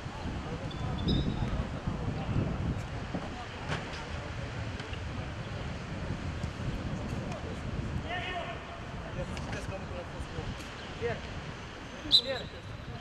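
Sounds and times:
wind noise on microphone: 0.0 - 13.0.

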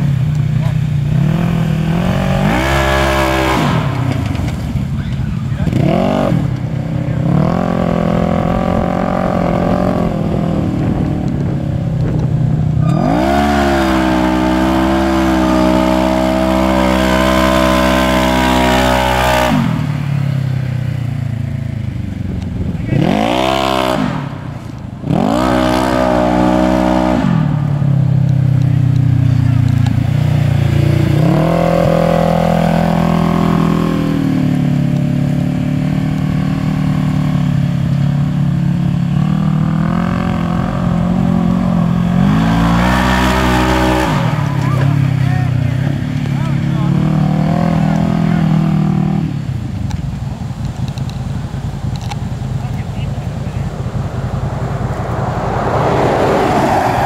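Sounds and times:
engine revving: 0.0 - 49.9, 50.8 - 57.0.

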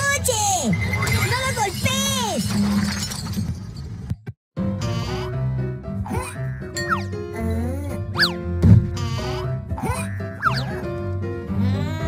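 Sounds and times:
glass vase shattering: 0.7 - 4.0
background music: 4.6 - 12.0.

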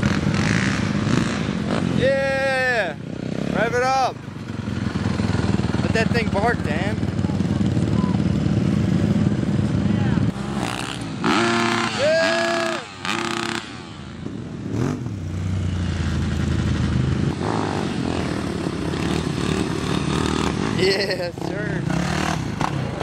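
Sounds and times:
dirt bike engines: 0.0 - 23.0
person yelling: 2.0 - 3.0, 11.8 - 13.0.

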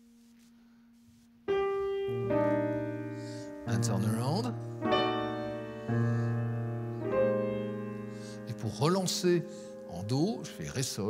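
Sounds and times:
grand piano jazz chords: 1.4 - 11.0.

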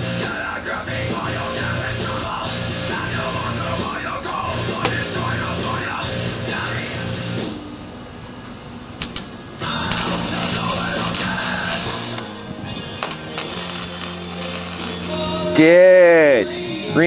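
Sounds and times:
sharp clicks: 9.0 - 9.3.

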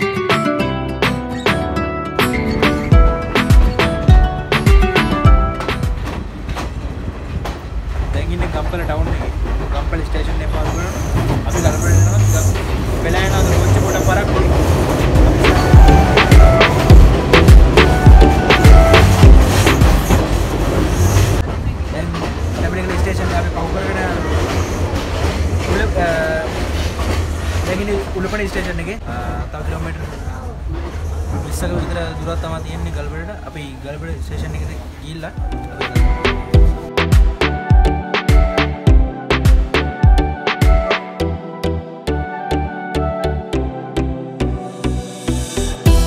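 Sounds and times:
train rumble: 2.7 - 36.9
train wheels clickety-clack: 5.6 - 32.6.

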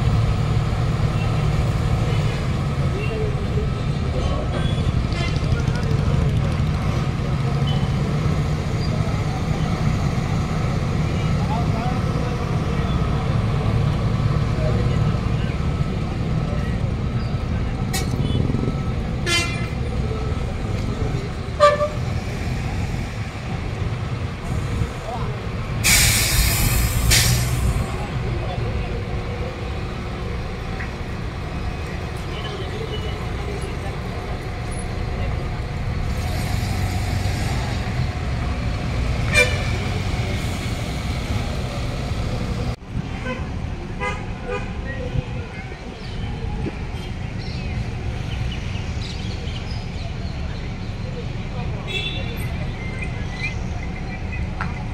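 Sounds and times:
bus engines rumbling: 0.0 - 54.9
bus horn toots: 19.2 - 19.8, 21.6 - 22.1, 39.3 - 39.8, 43.2 - 44.8
loud air hiss: 25.8 - 27.8.

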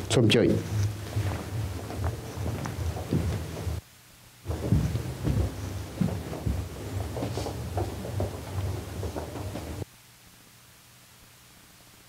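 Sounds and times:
microphone handling thumps and rustles: 0.0 - 3.8, 4.5 - 9.8.

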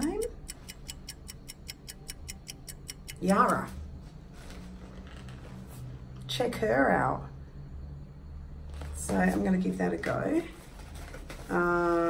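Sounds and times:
fast even ticking: 0.0 - 3.7.

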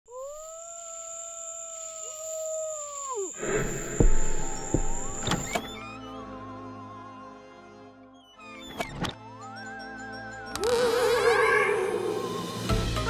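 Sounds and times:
music: 3.4 - 13.0
long howl-like call: 10.6 - 12.6.

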